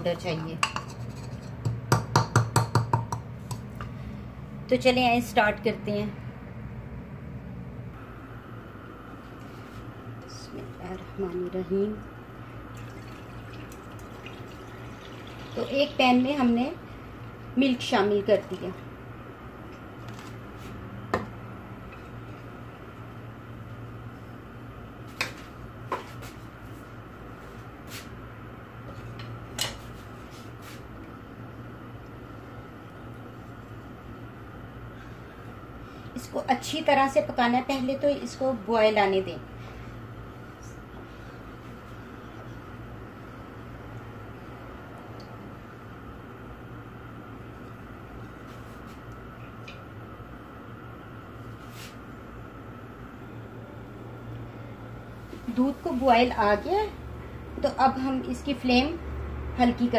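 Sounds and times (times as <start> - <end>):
low hum with soft hiss: 0.0 - 59.9.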